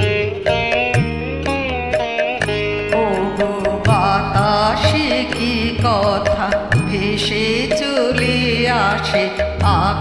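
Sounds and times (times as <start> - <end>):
instrumental accompaniment: 0.0 - 10.0
woman singing: 2.8 - 10.0.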